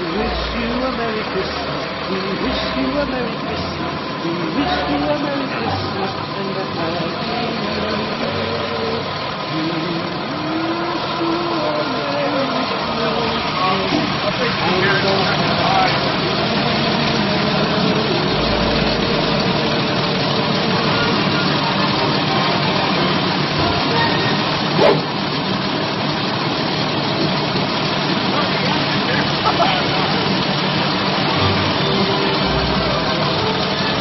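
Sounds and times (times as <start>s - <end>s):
faint voices: 0.0s - 34.0s
large vehicle engine idling: 0.0s - 34.0s.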